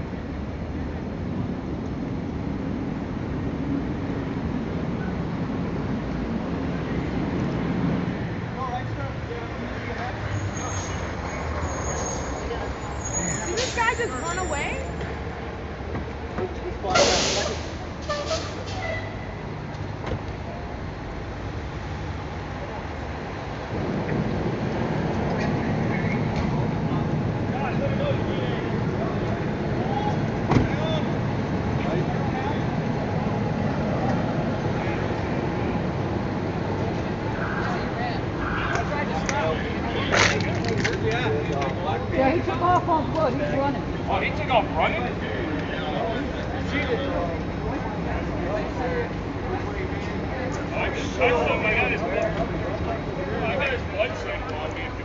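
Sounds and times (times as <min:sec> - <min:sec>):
street traffic: 0:00.0 - 0:55.0
distant voices: 0:04.5 - 0:55.0.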